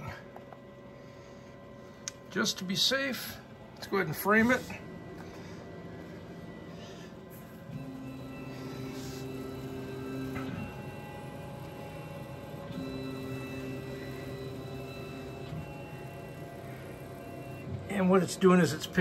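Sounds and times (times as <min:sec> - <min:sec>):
steady low hum: 0:00.0 - 0:19.0
stepper motors whining: 0:04.1 - 0:19.0.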